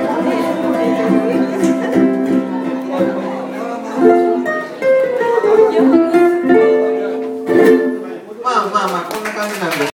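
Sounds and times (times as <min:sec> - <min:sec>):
ukulele chord strummed: 0:00.0 - 0:08.2
people talking: 0:00.0 - 0:09.9.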